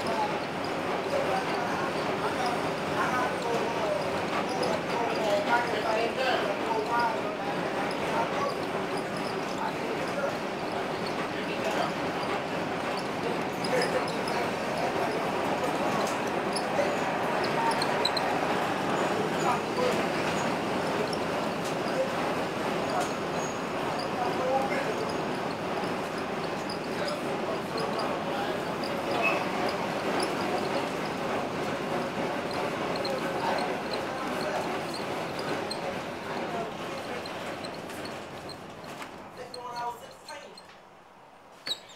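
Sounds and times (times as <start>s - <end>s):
streetcar running noise: 0.0s - 40.2s
voices: 0.0s - 40.8s.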